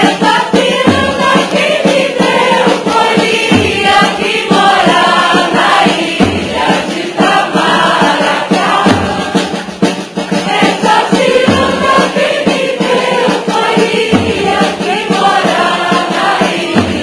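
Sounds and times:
group of voices singing: 0:00.0 - 0:17.0
low drum beats: 0:00.0 - 0:17.0
percussion: 0:00.0 - 0:17.0.

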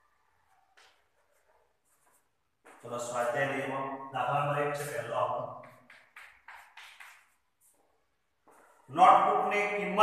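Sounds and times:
man speaking loudly: 0:02.8 - 0:05.6, 0:08.9 - 0:10.0
chalk scratching on blackboard: 0:04.8 - 0:07.9.

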